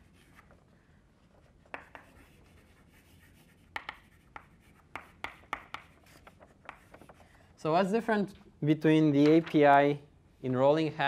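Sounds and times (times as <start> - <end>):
chalk scraping on blackboard: 0.0 - 0.6, 1.3 - 7.3
chalk tapping on blackboard: 1.5 - 7.2.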